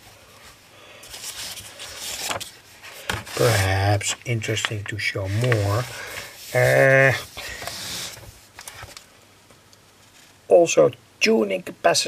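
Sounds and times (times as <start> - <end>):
book pages rustling: 0.0 - 9.1.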